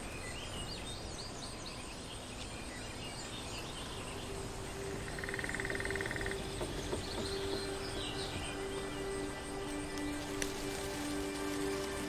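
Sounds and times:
ambient music low notes: 0.0 - 12.0
bird chirps: 0.0 - 12.0
steady background hiss: 0.0 - 12.0.

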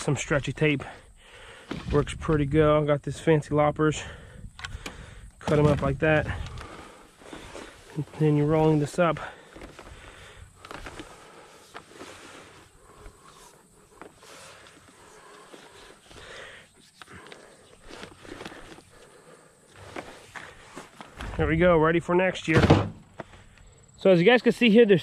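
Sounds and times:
plastic tubing rustling and scraping: 5.4 - 21.6.

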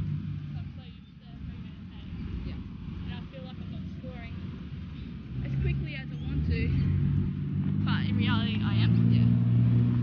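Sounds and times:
low engine hum: 0.0 - 10.0
voices talking: 0.4 - 9.5.

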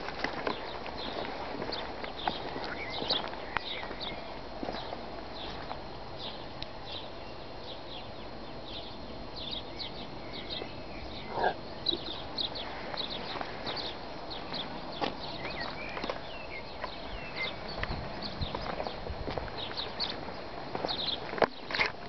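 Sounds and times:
footsteps: 0.0 - 5.8, 12.6 - 22.0
birds chirping: 0.0 - 22.0.

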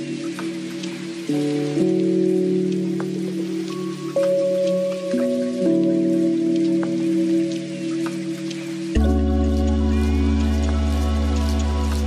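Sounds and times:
light plinking notes: 0.0 - 12.0
long held chords: 0.0 - 12.0.

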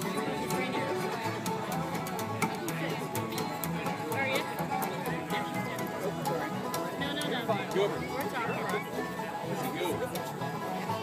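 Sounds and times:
acoustic guitars strumming: 0.0 - 11.0
upright bass line: 0.0 - 11.0.

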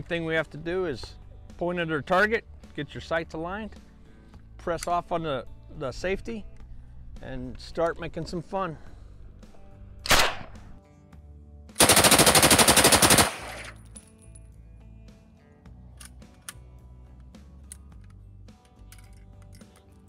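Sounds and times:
faint background music: 0.0 - 20.0
submachine gun firing bursts: 11.8 - 13.8.

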